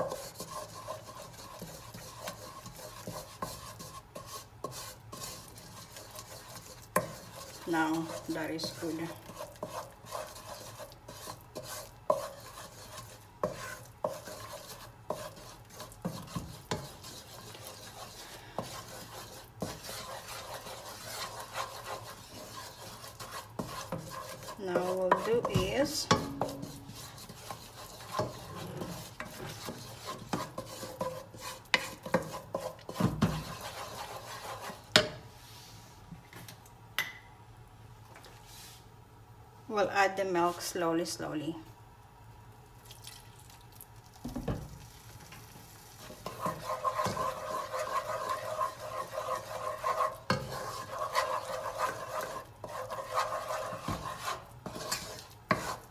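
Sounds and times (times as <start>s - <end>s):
wooden spoon scraping saucepan: 0.0s - 35.2s, 46.0s - 55.9s.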